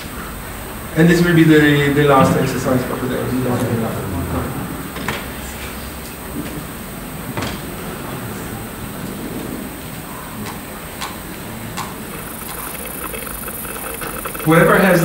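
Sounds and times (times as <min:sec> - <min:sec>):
laptop keys clicking: 0:12.1 - 0:14.6.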